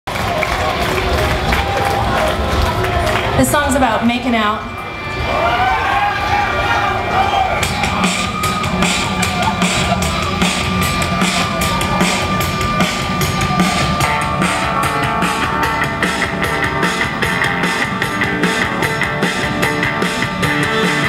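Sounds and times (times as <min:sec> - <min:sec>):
live rock band playing: 0:07.6 - 0:21.0.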